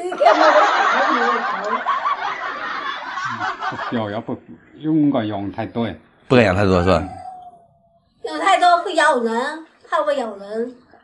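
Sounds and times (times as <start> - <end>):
man's voice: 6.3 - 7.3.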